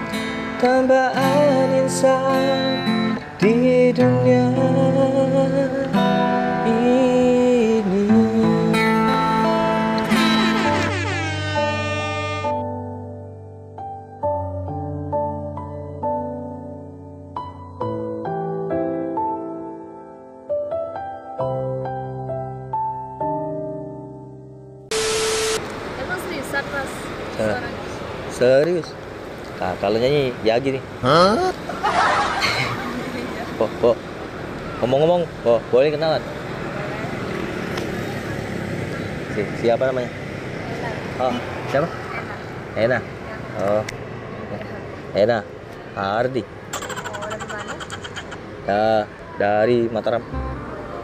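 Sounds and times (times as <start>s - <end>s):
background music of held notes: 0.0s - 24.9s, 50.3s - 51.0s
static hiss burst: 24.9s - 26.2s
faint voices: 46.7s - 49.4s.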